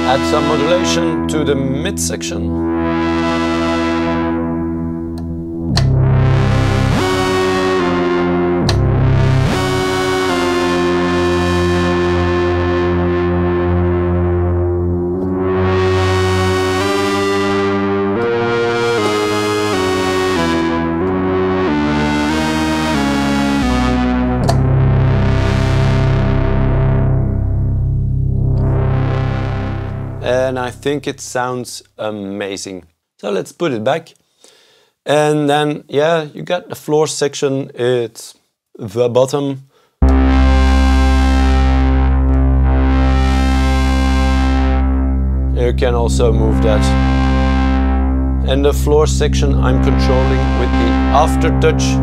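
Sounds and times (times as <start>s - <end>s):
modular synthesizer sustained notes: 0.0s - 31.6s, 40.0s - 52.0s.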